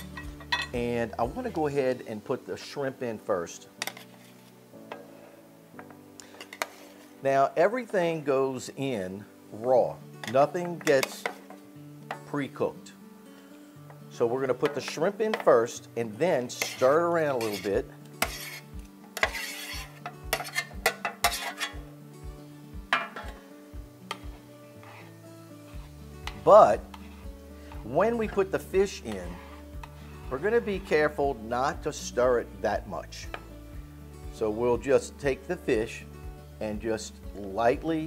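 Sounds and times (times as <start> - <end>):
metal spoon clinking and scraping: 0.0 - 0.8, 3.8 - 4.2, 16.5 - 21.9, 25.7 - 30.4
soft background music: 0.0 - 38.0.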